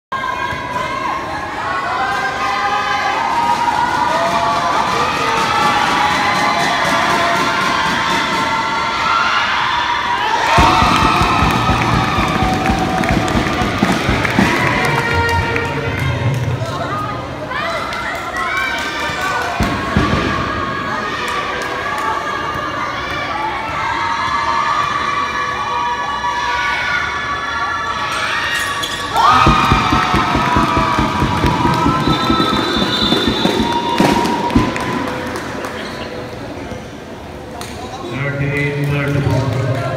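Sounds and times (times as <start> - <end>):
crowd cheering and shouting: 0.1 - 35.7
crowd clapping or banging: 10.5 - 15.7, 29.2 - 36.0
low beat: 29.3 - 34.8.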